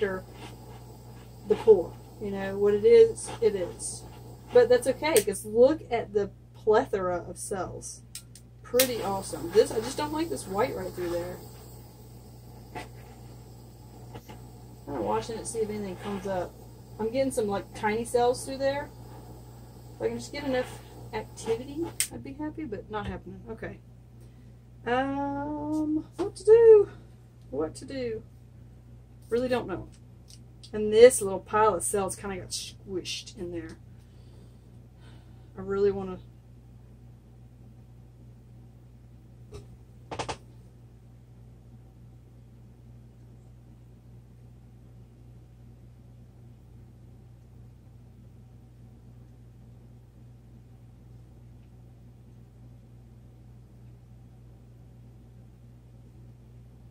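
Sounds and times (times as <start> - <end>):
torch flame hissing: 0.0 - 5.6, 8.8 - 22.2
steady low hum: 0.0 - 40.0.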